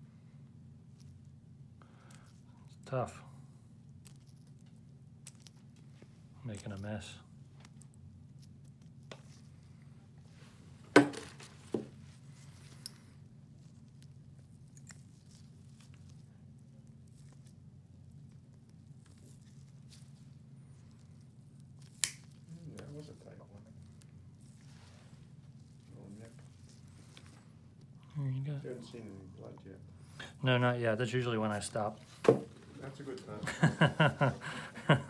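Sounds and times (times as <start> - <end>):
steady low hum: 0.0 - 35.0
nail nippers snapping toenail: 21.8 - 22.4.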